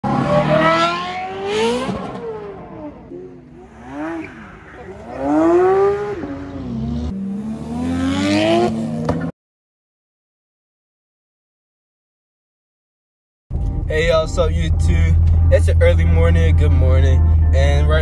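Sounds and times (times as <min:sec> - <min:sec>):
car engines revving: 0:00.0 - 0:09.3, 0:13.5 - 0:18.0.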